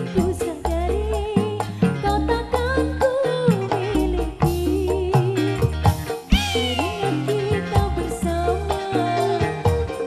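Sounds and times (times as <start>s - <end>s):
bass: 0.0s - 10.0s
woman singing: 0.0s - 10.0s.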